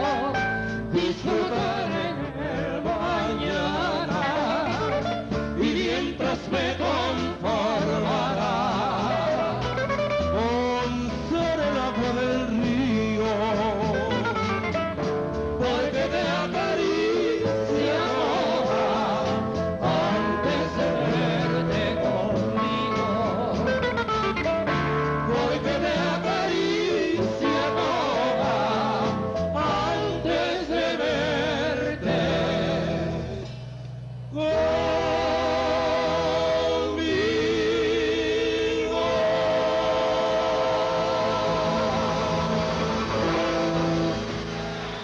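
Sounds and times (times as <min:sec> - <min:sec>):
acoustic guitars playing bolero: 0:00.0 - 0:45.0.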